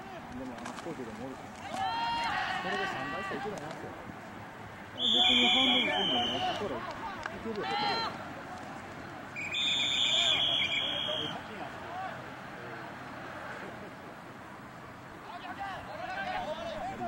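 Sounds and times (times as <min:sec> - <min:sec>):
people shouting: 0:01.6 - 0:03.6, 0:05.0 - 0:08.2, 0:09.4 - 0:12.3
referee's whistle blasts: 0:05.0 - 0:06.6, 0:09.4 - 0:11.5.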